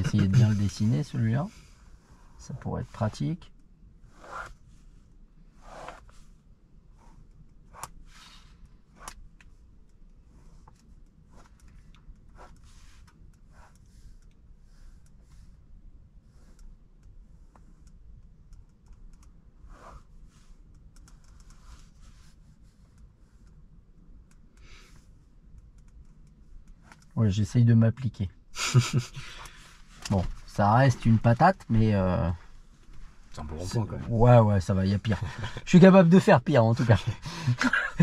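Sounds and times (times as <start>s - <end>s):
pen scratching on paper: 0.0s - 0.9s, 4.2s - 4.6s, 5.6s - 6.2s, 10.3s - 17.9s.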